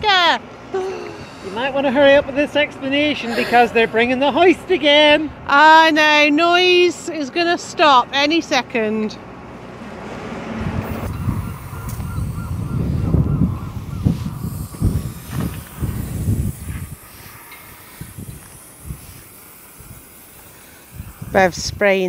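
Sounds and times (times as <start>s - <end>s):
travel hoist whining: 5.8s - 22.0s
wind buffeting microphone: 10.4s - 22.0s.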